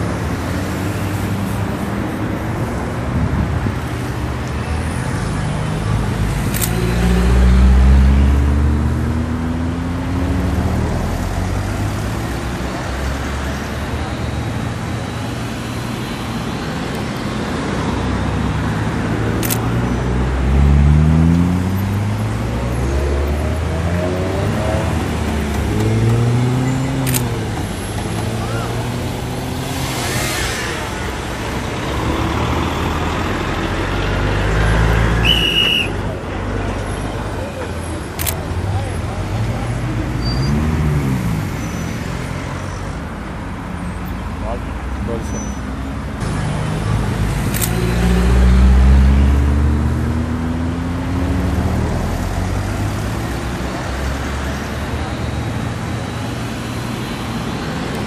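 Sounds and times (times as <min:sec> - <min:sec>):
vehicles passing on highway: 0:00.0 - 0:58.0
sharp clicks: 0:19.4 - 0:19.8, 0:27.0 - 0:27.4, 0:38.1 - 0:38.4, 0:47.5 - 0:47.9.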